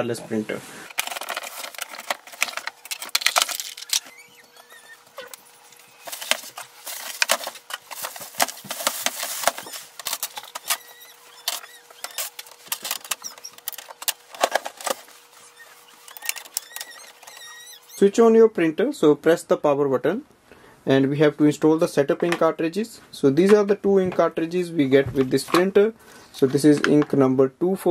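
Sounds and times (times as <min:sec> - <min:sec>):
packaging squeaks: 0:00.9 - 0:18.1
thin wavering squeak: 0:03.8 - 0:06.2, 0:10.5 - 0:12.4, 0:15.2 - 0:18.1.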